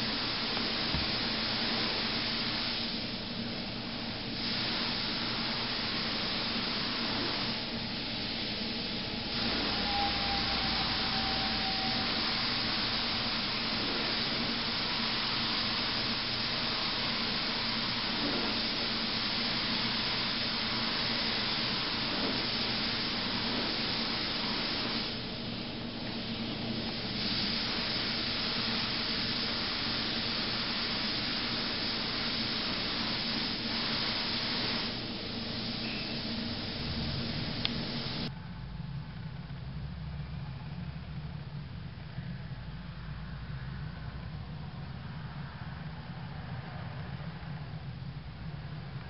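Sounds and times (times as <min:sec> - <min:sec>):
spray gun hissing: 0:00.0 - 0:38.3.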